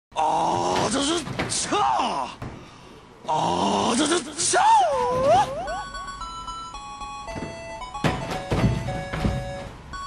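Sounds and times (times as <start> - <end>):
person's wordless vocal cries: 0.1 - 2.4, 3.2 - 6.0.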